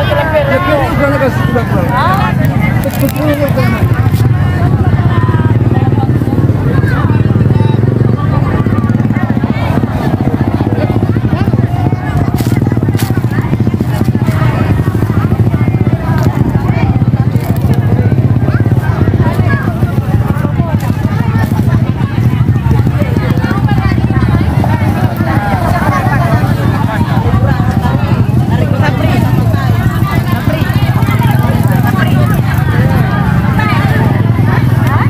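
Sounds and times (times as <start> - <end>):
chatter of many people: 0.0 - 35.0.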